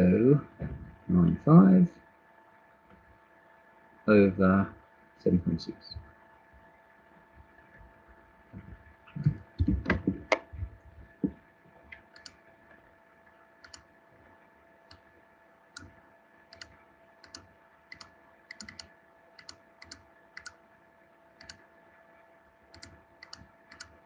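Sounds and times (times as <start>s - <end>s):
low electrical hum: 0.0s - 24.0s
mouse buttons clicking: 16.6s - 20.6s, 22.8s - 23.9s.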